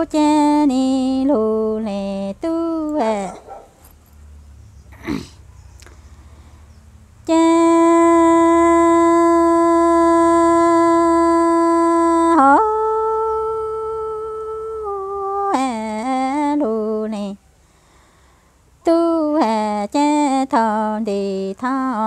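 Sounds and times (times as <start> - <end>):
woman singing long held notes: 0.0 - 3.3, 7.2 - 17.4, 18.8 - 22.0.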